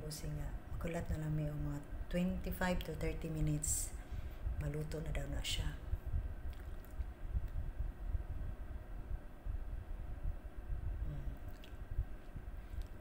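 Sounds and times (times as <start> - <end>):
fan oven rumble: 0.0 - 13.0.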